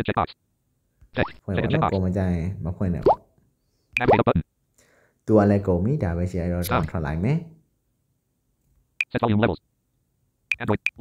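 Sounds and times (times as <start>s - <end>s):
person speaking: 1.1s - 3.3s, 5.2s - 7.6s.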